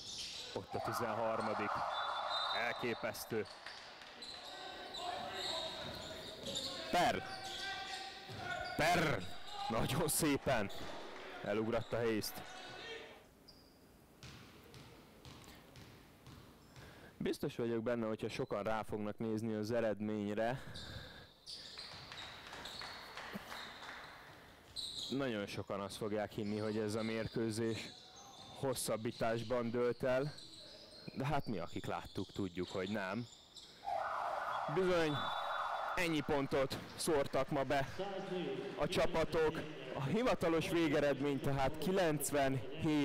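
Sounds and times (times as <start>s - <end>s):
sneaker squeaks: 0.0s - 11.0s, 11.6s - 17.0s, 20.6s - 25.5s, 26.3s - 37.1s
faint voices in echoing hall: 0.0s - 13.2s
basketball bouncing on hardwood floor: 14.2s - 16.6s.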